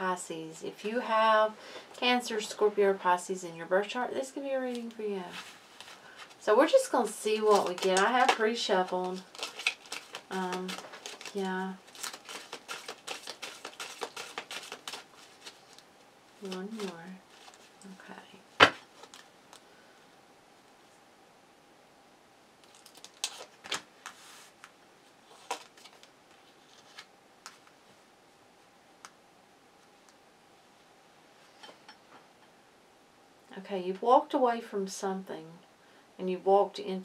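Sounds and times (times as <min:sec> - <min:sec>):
cards being shuffled: 0:04.6 - 0:06.4, 0:07.0 - 0:17.9, 0:18.6 - 0:19.6, 0:22.6 - 0:27.8.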